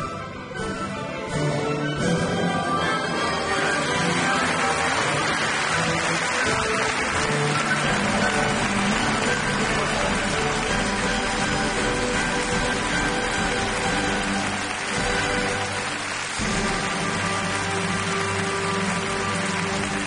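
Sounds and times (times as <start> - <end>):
music playing: 0.0 - 20.0
audience applauding: 3.2 - 20.0.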